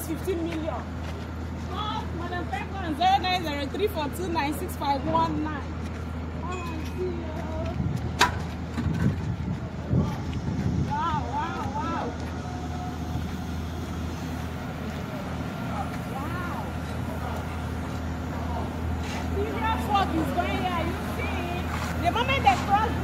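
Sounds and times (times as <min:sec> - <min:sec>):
construction machinery engine hum: 0:00.0 - 0:23.0
faint voices: 0:09.3 - 0:23.0.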